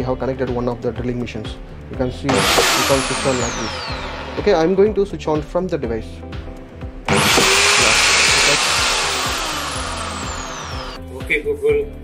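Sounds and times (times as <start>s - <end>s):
electric drill motor whine: 2.3s - 4.8s, 7.1s - 11.0s.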